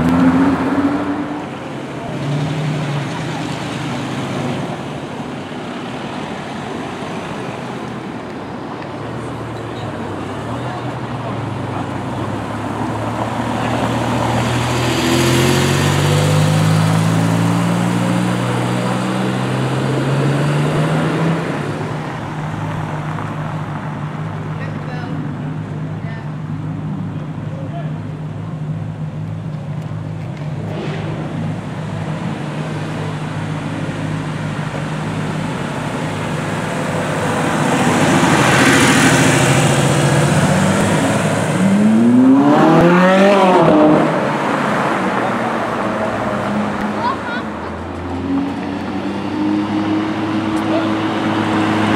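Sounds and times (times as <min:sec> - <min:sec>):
car passing: 0:00.0 - 0:27.9, 0:30.3 - 0:51.9
sports car engine accelerating: 0:10.0 - 0:24.6, 0:28.5 - 0:51.9
engine revving hard: 0:37.7 - 0:45.5.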